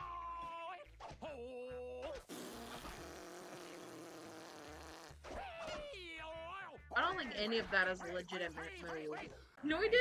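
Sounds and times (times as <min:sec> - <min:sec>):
buzzing raspberry: 0:02.3 - 0:05.2.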